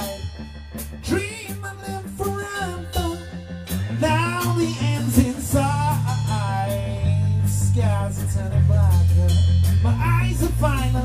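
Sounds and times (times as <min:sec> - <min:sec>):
person singing: 0:00.0 - 0:00.4, 0:01.0 - 0:11.0
bass guitar: 0:00.0 - 0:11.0
drum kit with cymbals: 0:00.0 - 0:11.0
electric guitar: 0:00.0 - 0:11.0.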